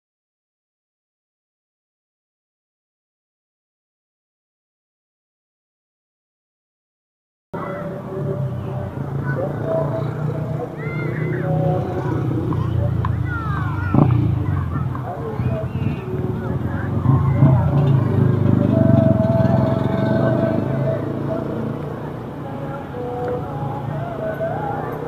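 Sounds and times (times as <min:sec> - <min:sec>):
car engines humming: 0:07.6 - 0:25.0
people talking: 0:07.6 - 0:25.0.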